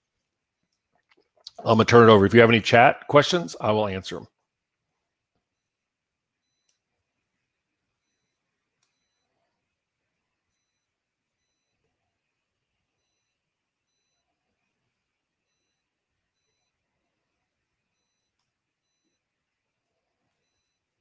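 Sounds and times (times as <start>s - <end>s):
faint high-pitched beeps: 5.5s - 21.0s.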